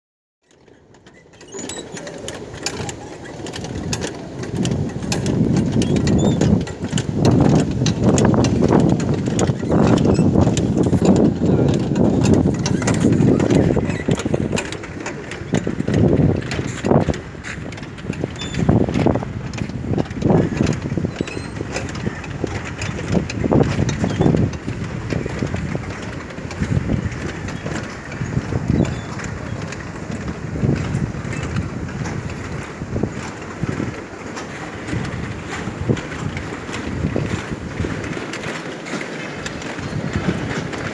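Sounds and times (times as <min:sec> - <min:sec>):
machinery clicks and clanks: 0:00.5 - 0:40.9
mill machinery rumbling: 0:00.5 - 0:40.9
people talking: 0:11.0 - 0:12.2.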